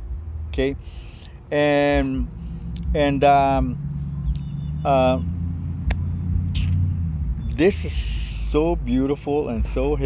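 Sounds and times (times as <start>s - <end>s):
low outdoor rumble: 0.0s - 10.0s
man saying uh: 1.5s - 2.3s, 2.9s - 3.8s.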